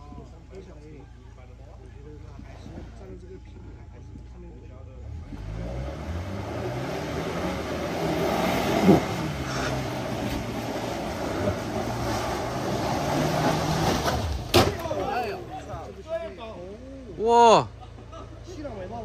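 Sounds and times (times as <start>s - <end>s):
car engine revving hard: 5.1s - 14.5s
tyres churning in mud: 5.3s - 16.3s.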